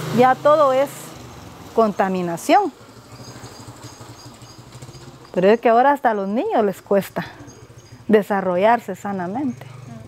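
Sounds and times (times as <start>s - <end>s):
distant engine humming: 0.0s - 10.0s
faint outdoor background: 0.0s - 10.0s.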